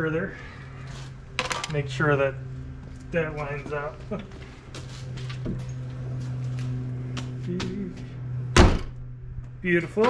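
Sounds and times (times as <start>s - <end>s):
steady low hum: 0.0s - 10.0s
car hood slamming shut: 8.6s - 9.0s.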